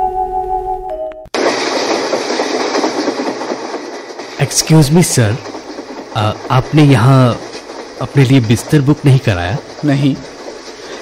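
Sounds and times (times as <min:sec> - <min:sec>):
train rumble and wheel clatter: 0:01.4 - 0:11.0.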